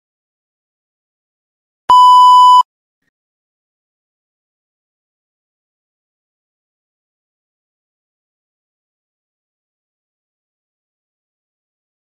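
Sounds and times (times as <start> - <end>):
electronic beep: 1.9 - 2.6.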